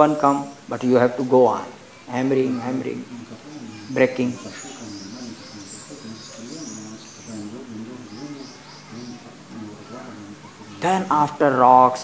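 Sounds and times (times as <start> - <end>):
low background calls or voices: 0.0 - 12.0
small birds chirping: 0.0 - 12.0.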